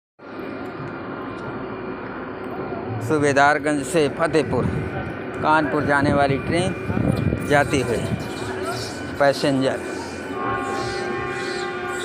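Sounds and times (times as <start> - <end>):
train rumbling hum: 0.2 - 12.0.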